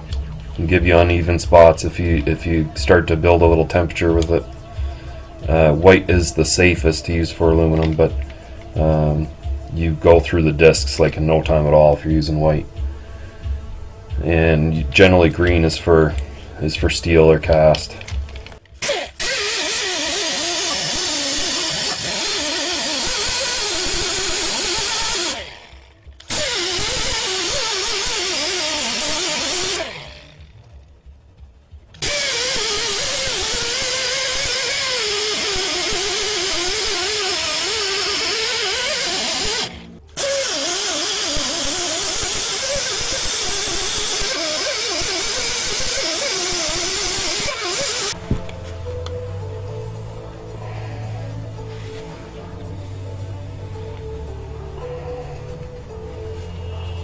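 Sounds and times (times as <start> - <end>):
exhaust air hissing: 18.8 - 30.3, 32.0 - 48.4
die grinder whining: 18.8 - 30.5, 32.0 - 48.2.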